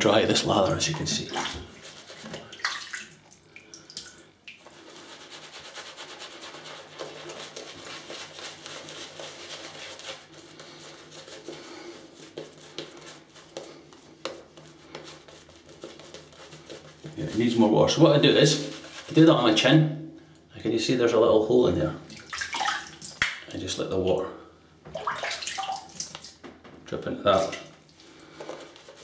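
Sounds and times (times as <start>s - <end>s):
shaving brush crackling lather: 4.6s - 19.5s.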